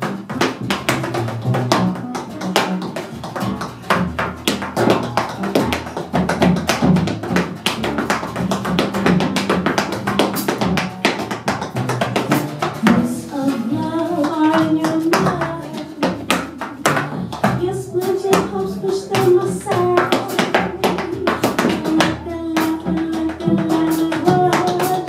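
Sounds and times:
drums: 0.0 - 25.0
jazz bass line: 0.0 - 25.0
tap shoes on wooden stage: 0.0 - 25.0.

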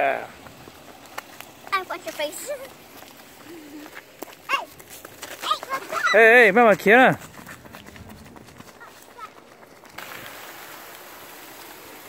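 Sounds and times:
light footsteps on pavement: 0.3 - 10.2.

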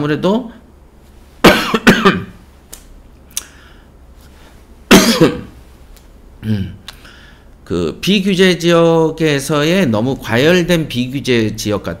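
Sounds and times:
man coughing: 1.4 - 2.4, 4.9 - 5.5.

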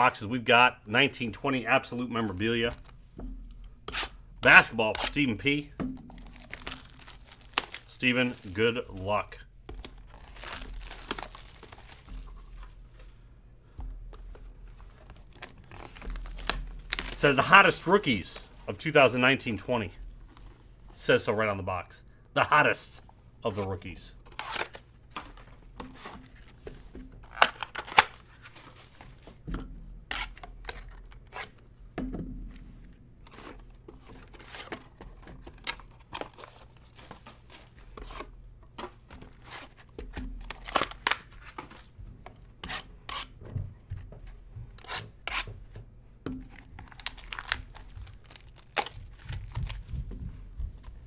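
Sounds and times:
wrapping and cardboard tearing: 6.1 - 9.0, 9.8 - 12.8, 15.1 - 18.0, 24.2 - 24.8, 27.2 - 29.0, 40.4 - 41.9, 46.5 - 50.1.

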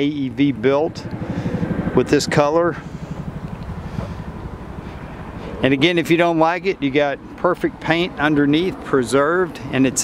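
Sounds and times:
car engine idling: 0.0 - 9.8.

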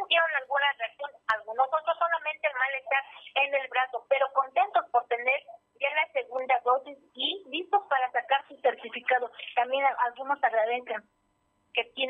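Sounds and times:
woman speaking over telephone: 0.0 - 11.1, 11.8 - 12.0.

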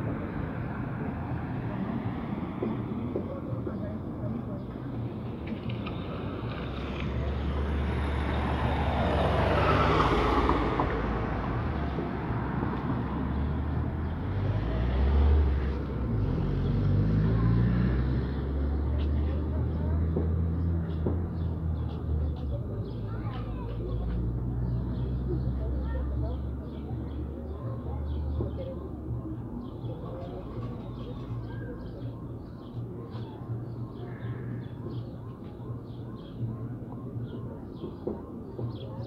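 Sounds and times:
vehicle passing: 5.6 - 27.4.

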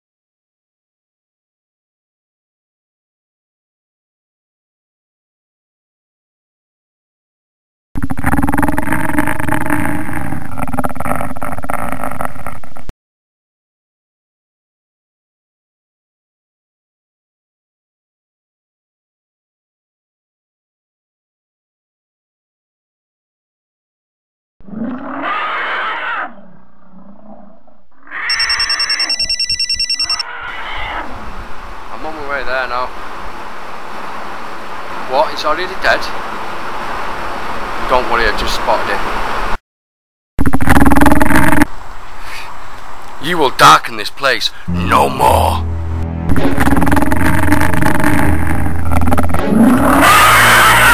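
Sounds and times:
monster growl: 8.0 - 12.9, 46.3 - 50.6
telephone ringing electronic pulses: 28.3 - 30.2, 40.4 - 41.7.

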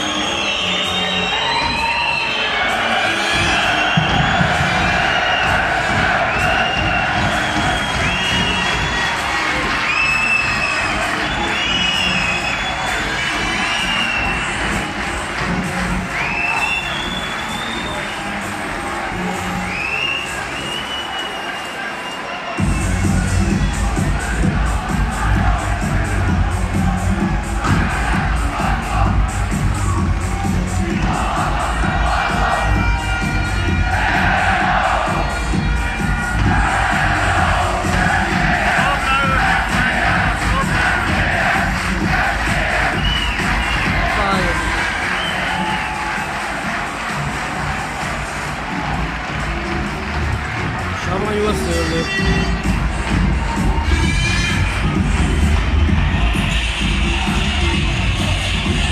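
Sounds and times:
loud music with heavy bass beat: 0.0 - 20.7, 22.6 - 58.9
crowd cheering and chanting: 0.0 - 58.9.

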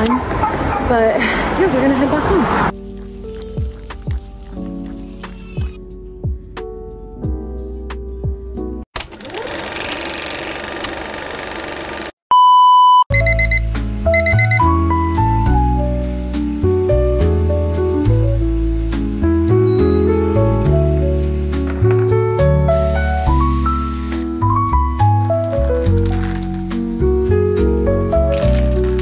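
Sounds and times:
alarm clock beep: 12.3 - 14.7, 19.7 - 20.1
music with bass and melody: 13.1 - 29.0
hiss-like noise: 15.8 - 24.5.

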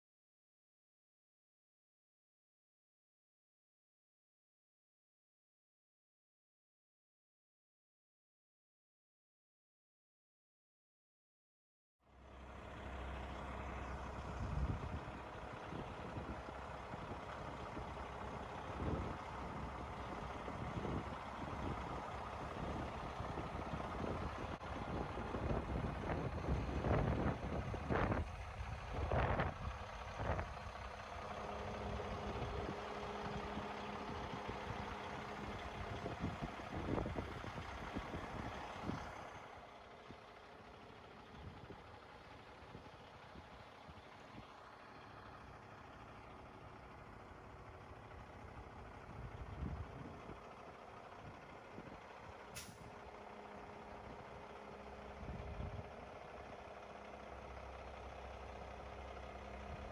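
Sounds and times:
truck diesel engine running: 12.0 - 59.9.

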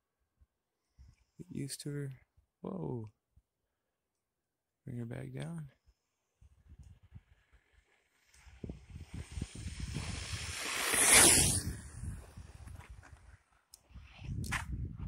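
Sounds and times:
tyre noise on asphalt: 6.3 - 15.0
rc truck motor whine: 7.3 - 12.5.

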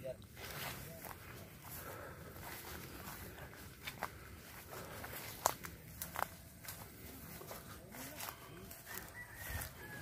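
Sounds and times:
footsteps on dry ground: 0.0 - 10.0.

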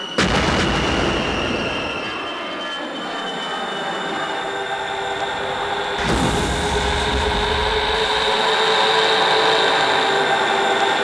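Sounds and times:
explosion roar: 6.0 - 8.4.

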